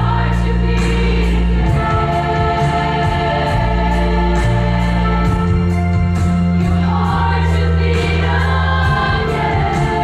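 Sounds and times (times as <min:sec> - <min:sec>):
girls' choir singing: 0:00.0 - 0:05.7, 0:06.6 - 0:10.0
instrumental accompaniment with beat: 0:00.0 - 0:10.0.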